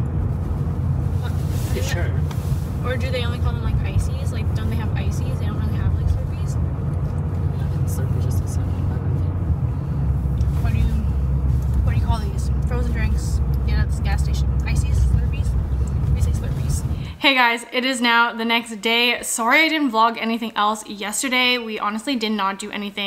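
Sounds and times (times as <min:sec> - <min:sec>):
car road rumble: 0:00.0 - 0:17.2.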